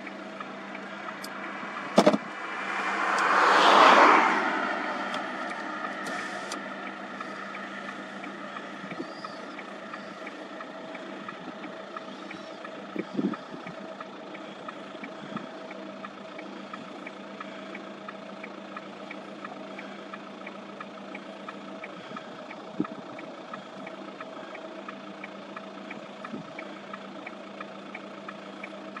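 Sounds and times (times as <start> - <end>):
motor humming: 0.0 - 29.0
faint regular tick: 5.0 - 29.0.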